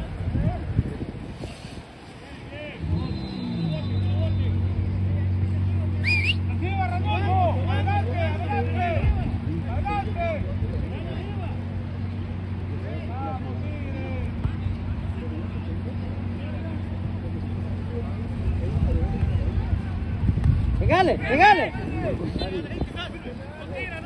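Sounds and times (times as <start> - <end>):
low engine-like hum: 0.0 - 24.0
distant shouting voices: 2.2 - 24.0.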